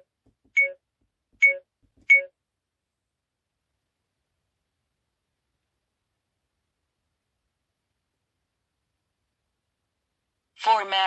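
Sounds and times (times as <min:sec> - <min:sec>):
short electronic key beeps: 0:00.6 - 0:00.8, 0:01.4 - 0:02.3.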